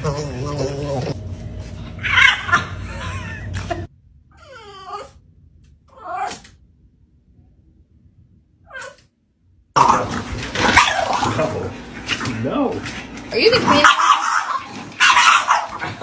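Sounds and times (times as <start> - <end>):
puppy whining: 2.0 - 5.2.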